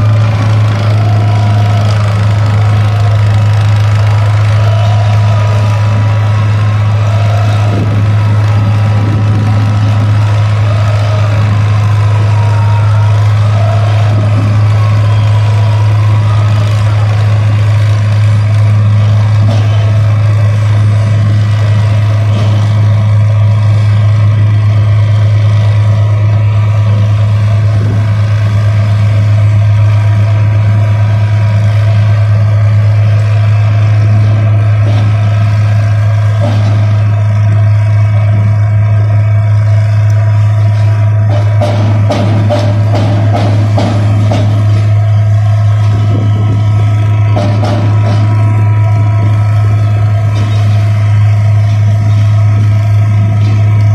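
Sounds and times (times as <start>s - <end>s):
piling rig deep drone: 0.0s - 53.9s.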